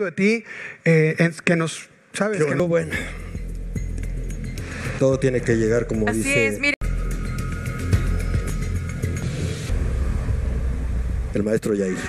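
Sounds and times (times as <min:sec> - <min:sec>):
deep bass drone: 0:06.8 - 0:12.0.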